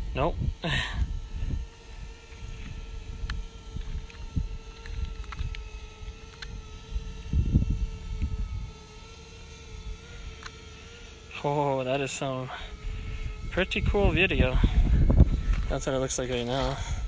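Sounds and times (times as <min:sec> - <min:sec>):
wind buffeting microphone: 0:00.0 - 0:08.8, 0:12.8 - 0:17.0
drone propellers humming: 0:00.0 - 0:17.0.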